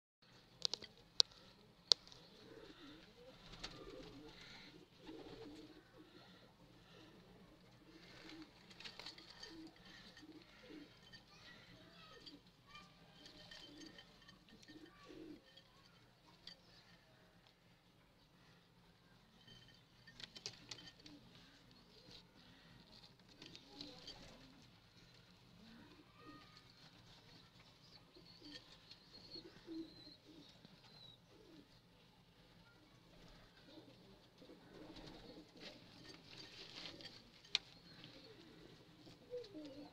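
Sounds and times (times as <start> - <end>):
pigeons cooing: 0.7 - 15.6, 25.5 - 32.0, 33.2 - 39.9.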